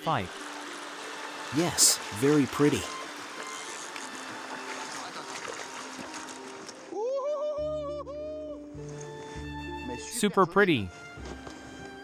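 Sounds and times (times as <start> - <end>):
river water running over rocks: 0.0 - 6.9
background music: 0.0 - 12.0.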